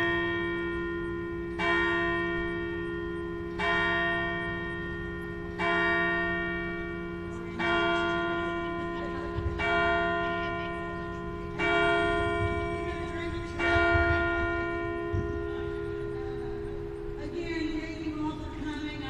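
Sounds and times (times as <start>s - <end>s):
large bell tolling: 0.0s - 19.0s.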